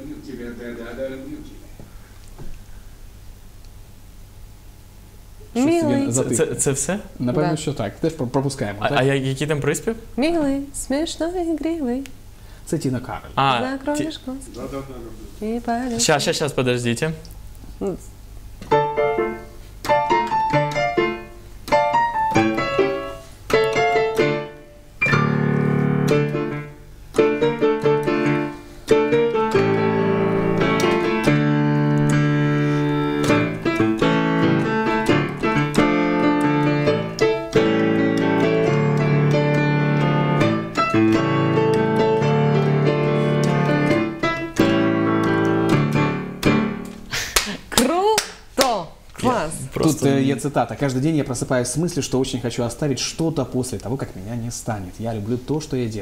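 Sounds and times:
electric piano playing: 18.6 - 47.1.

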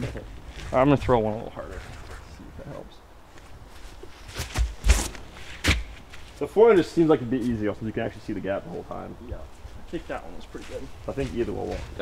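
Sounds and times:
footsteps thumping: 3.3 - 6.4.

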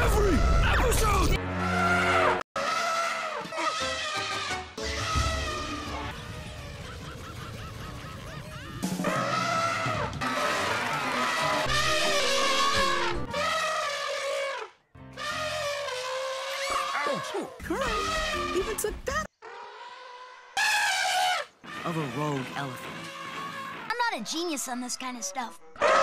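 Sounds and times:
elephant trumpeting: 1.5 - 24.1.

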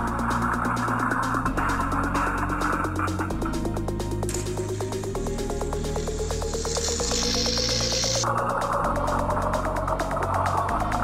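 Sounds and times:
electronic music with bass: 0.0 - 11.0.

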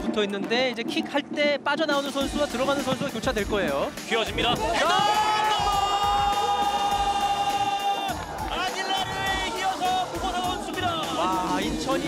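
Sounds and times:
background music: 0.0 - 12.0
excited commentary: 0.0 - 12.0
commentator shouting: 4.3 - 12.0.

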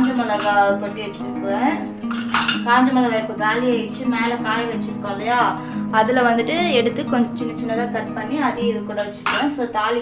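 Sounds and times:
steel cups clinking and scraping: 0.0 - 2.7
background music with voice: 0.0 - 10.0.

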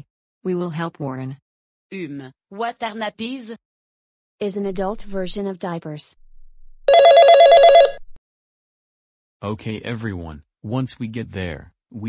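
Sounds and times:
telephone ringing with electronic trill: 6.9 - 8.0.

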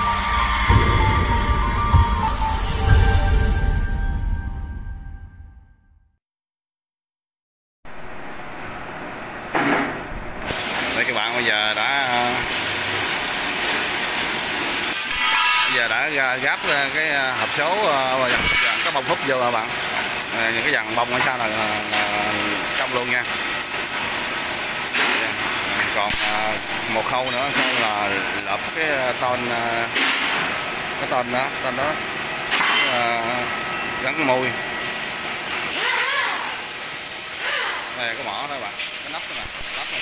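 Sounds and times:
arc welding hiss: 10.5 - 40.0.

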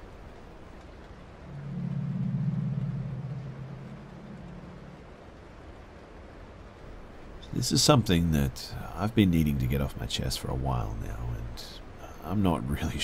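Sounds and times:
faint hiss: 0.0 - 13.0
low droning tone: 1.4 - 5.6.

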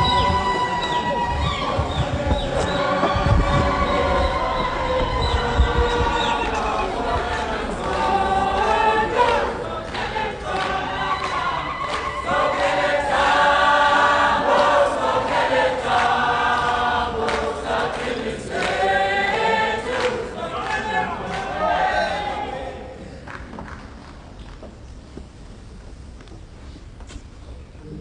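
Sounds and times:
choir singing: 0.0 - 23.2.

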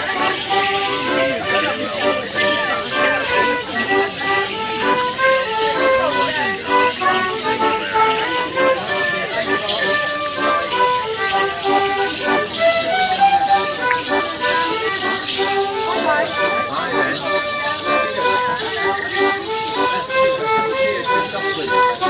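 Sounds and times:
lively folk tune: 0.0 - 22.0.

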